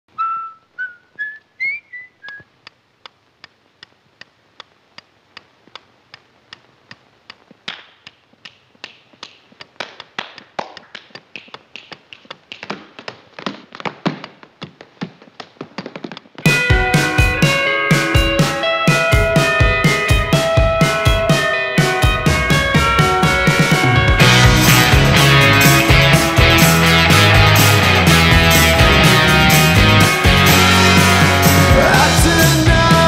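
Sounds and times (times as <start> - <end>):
whistled rising notes: 0.1 - 2.5
steady ticking: 2.6 - 14.4
tap-dance steps: 7.4 - 17.1.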